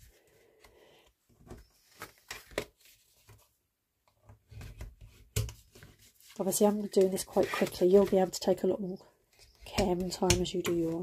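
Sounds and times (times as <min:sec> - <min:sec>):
paper rustling and rubbing: 0:05.6 - 0:08.4.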